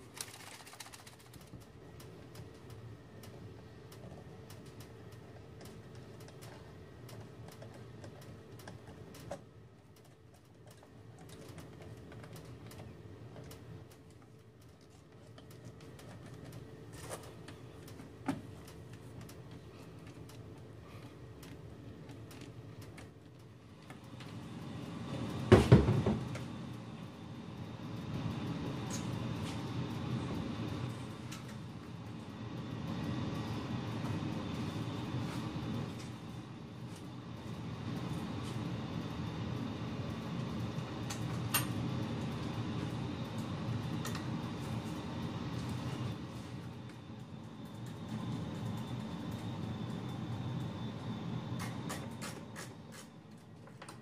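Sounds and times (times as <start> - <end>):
furnace rumbling: 0.0 - 54.0.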